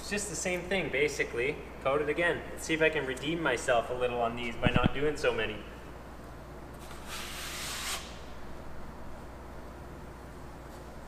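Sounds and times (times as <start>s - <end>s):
taping knife scraping drywall: 6.9s - 8.2s.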